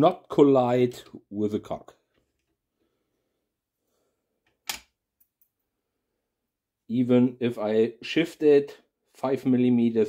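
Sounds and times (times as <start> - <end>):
sharp metal click: 4.6 - 4.9.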